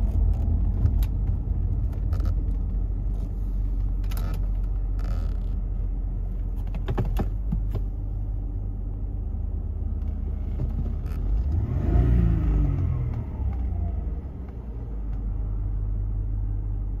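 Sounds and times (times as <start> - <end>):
car engine idling and revving: 0.0 - 17.0.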